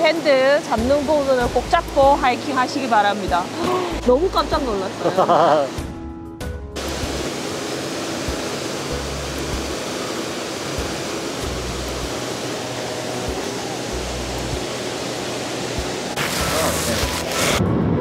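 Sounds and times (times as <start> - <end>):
waterfall falling onto rocks: 0.0 - 5.8, 6.8 - 17.6.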